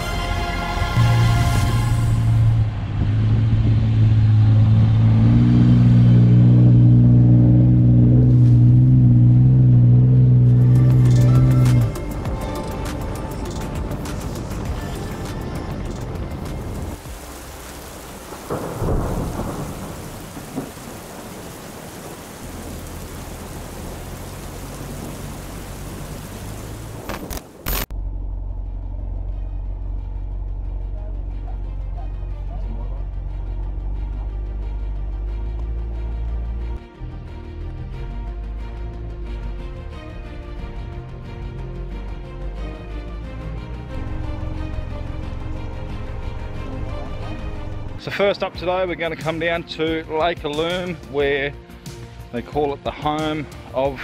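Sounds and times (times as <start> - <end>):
rushing rumbling noise: 1.4 - 30.8.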